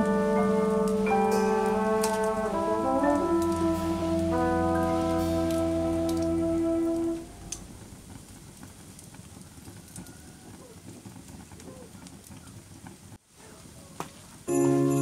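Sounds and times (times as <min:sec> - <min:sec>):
music holding a chord: 0:00.0 - 0:07.7, 0:14.5 - 0:15.0
crackling wood fire: 0:00.0 - 0:15.0.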